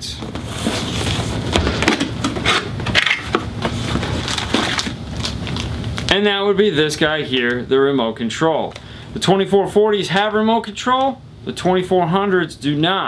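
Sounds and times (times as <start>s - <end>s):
cardboard rustling: 0.2s - 5.7s
plastic crinkling: 0.6s - 6.2s.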